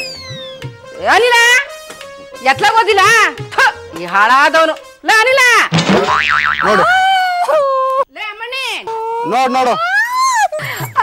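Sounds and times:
comic boing sound effect: 5.9 - 7.1
woman wailing: 6.7 - 8.1, 9.0 - 11.0.

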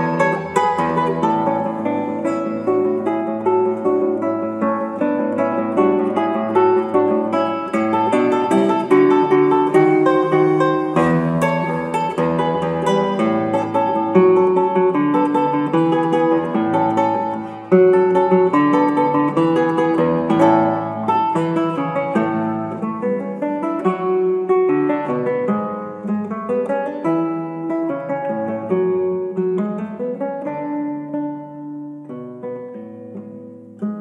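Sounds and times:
solo guitar plucked notes: 0.0 - 34.0.

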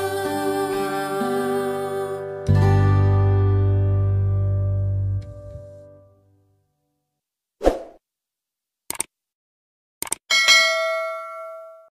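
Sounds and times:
quick clicks: 8.9 - 9.1, 10.0 - 10.2
notification bell ding: 10.3 - 11.9.

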